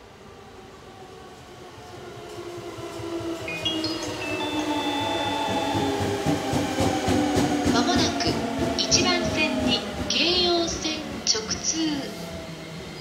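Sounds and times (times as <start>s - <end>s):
electric train arriving and braking: 0.0s - 13.0s.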